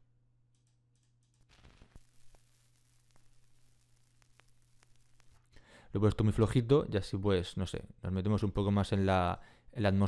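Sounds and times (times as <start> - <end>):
vinyl crackle: 0.5 - 6.8.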